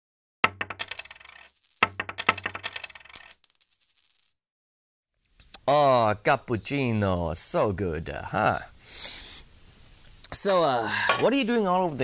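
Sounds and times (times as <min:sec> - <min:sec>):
coin dropping and rattling: 0:00.4 - 0:04.4.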